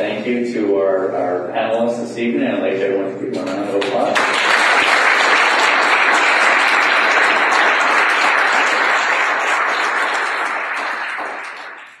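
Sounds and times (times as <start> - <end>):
audience applauding: 3.8 - 12.0.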